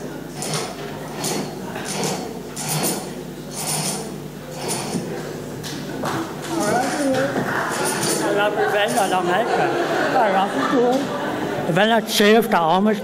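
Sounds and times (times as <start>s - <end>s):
curtain runners rasping along track: 0.0s - 5.4s, 6.4s - 9.2s.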